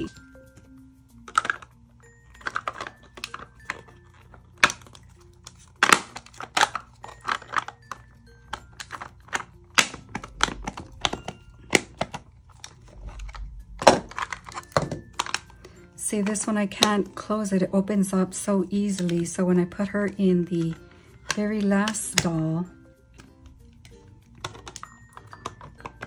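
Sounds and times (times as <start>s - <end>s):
plastic shells clicking and knocking: 0.0s - 17.2s, 18.4s - 26.0s
sharp plastic snap: 9.7s - 12.2s.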